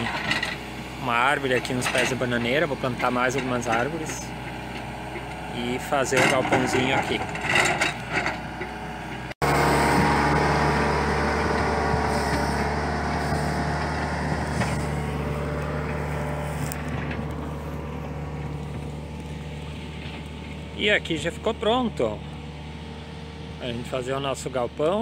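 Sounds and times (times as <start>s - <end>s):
diesel engine running: 0.0s - 25.0s.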